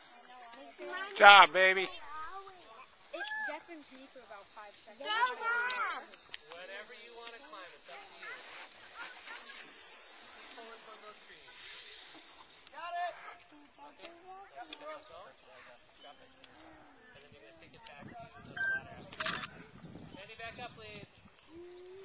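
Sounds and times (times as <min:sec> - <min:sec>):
indistinct chatter: 0:01.9 - 0:19.8.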